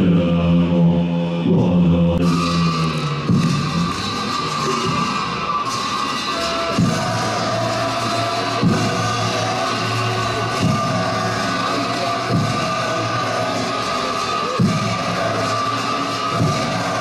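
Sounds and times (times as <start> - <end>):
deep monastic chanting: 0.0 - 3.9, 6.7 - 17.0
ritual music with held tones: 0.0 - 17.0.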